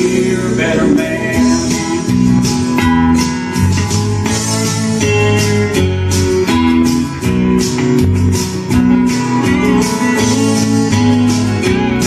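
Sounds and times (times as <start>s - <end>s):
electric guitar strumming chords: 0.0s - 12.0s.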